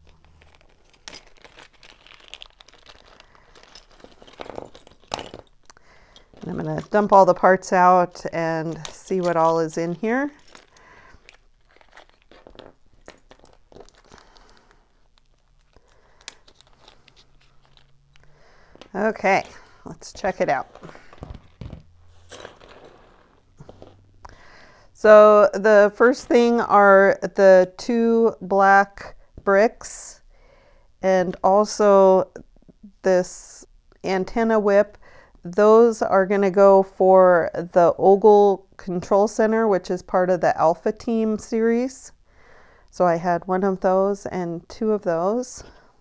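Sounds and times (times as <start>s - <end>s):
plastic pieces clattering onto paper: 0.0s - 7.0s, 10.4s - 14.5s
hands rustling paper: 0.0s - 24.5s
plastic bags crinkling: 0.0s - 24.5s
plastic pieces clicking: 10.4s - 19.0s.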